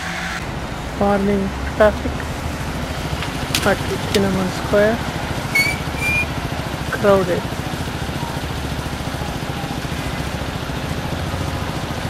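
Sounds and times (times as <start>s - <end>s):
rumble of scooters and cars: 0.0s - 12.0s
high-pitched squeaks: 5.4s - 6.4s.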